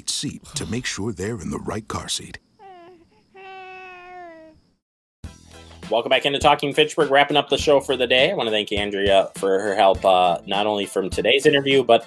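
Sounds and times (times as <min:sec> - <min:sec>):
man talking: 0:00.0 - 0:02.4, 0:05.8 - 0:12.0
baby whining cry: 0:02.6 - 0:04.6.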